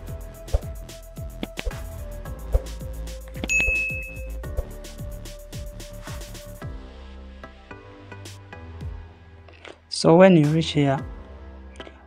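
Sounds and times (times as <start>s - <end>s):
music with hi-hats and bass kicks: 0.0s - 9.2s, 10.4s - 11.3s
bright ding: 3.5s - 4.4s.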